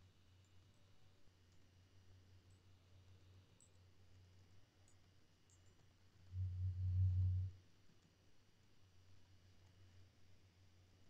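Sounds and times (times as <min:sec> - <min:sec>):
steady low hum: 0:02.1 - 0:07.8
loud low buzz: 0:06.3 - 0:07.5.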